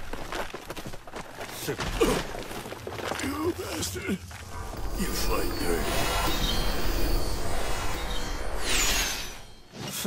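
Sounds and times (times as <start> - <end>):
falling shimmering sweep: 4.6 - 9.7.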